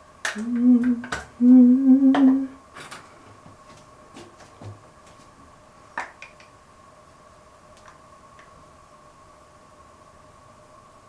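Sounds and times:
woman humming a held note: 0.4s - 2.6s.

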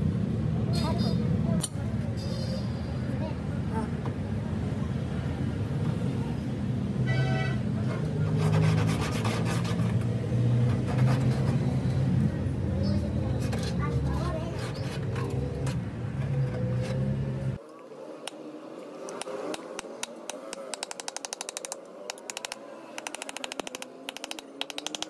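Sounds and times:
tool clicking and tapping on metal: 19.1s - 25.0s.

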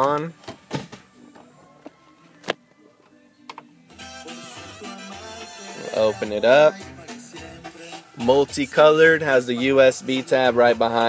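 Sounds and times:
music with beat and bass: 3.9s - 11.0s.

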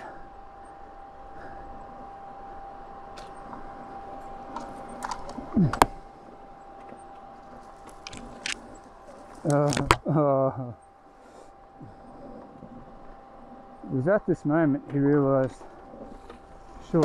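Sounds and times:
faint steady whine: 0.0s - 17.0s.

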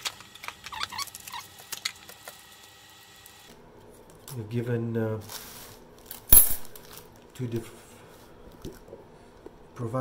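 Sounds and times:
metal blade clattering on stone: 6.3s - 6.8s.

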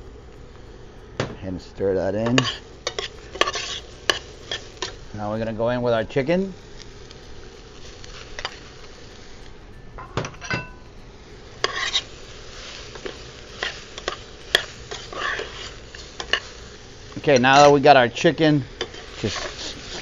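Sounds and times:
faint sizzle: 0.0s - 20.0s
spoon clinking and scraping pot: 2.2s - 5.0s, 11.6s - 12.1s.

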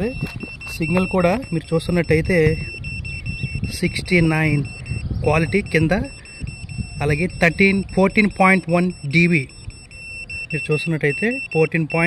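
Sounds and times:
continuous high-pitched beeper tone: 0.0s - 12.0s
man talking: 7.0s - 9.5s, 10.5s - 12.0s.

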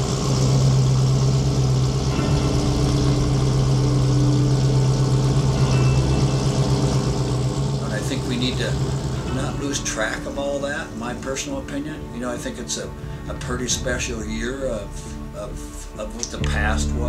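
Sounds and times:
pickup truck engine running: 0.0s - 17.0s.

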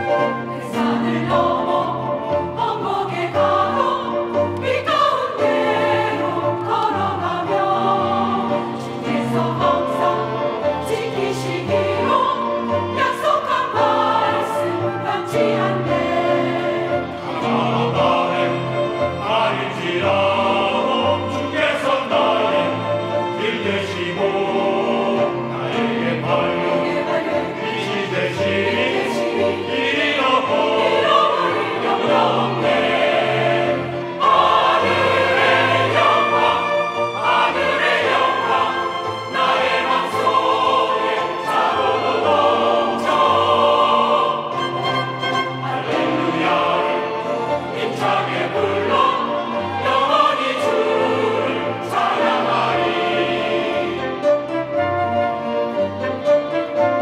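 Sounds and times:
flute: 0.0s - 6.1s, 8.6s - 19.4s, 25.2s - 57.0s
choir singing a hymn: 0.0s - 57.0s
strings: 0.0s - 57.0s.

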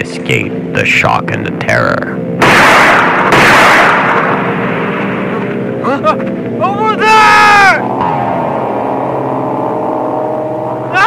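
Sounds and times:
low pitched drone: 0.0s - 11.0s.

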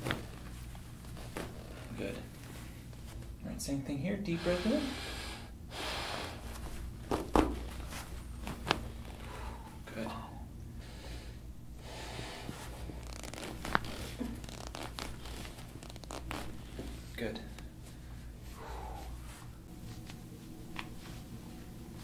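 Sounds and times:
soft joint crackling: 0.0s - 3.4s, 6.5s - 9.3s, 12.4s - 21.2s
spine joints cracking: 6.7s - 9.3s, 12.9s - 17.0s.

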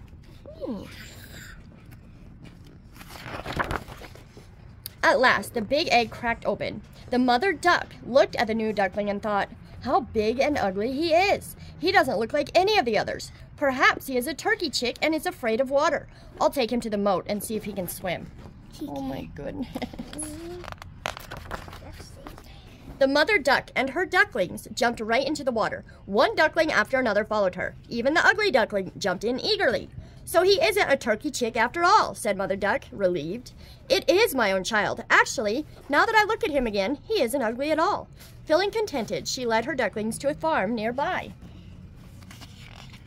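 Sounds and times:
paper page turning: 2.5s - 4.5s, 20.0s - 22.4s, 42.0s - 43.0s
person laughing: 19.6s - 20.6s.

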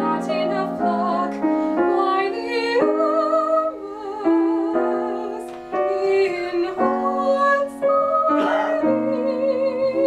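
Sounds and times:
piano accompaniment: 0.0s - 10.0s
woman singing with vibrato: 0.0s - 10.0s.

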